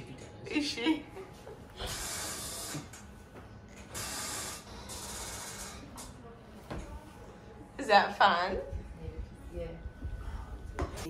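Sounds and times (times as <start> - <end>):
electric bed motor running: 1.7 - 6.2.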